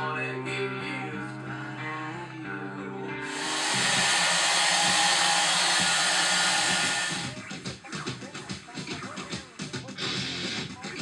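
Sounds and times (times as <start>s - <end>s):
background music: 0.0s - 11.0s
loud hiss of noise: 3.2s - 7.4s.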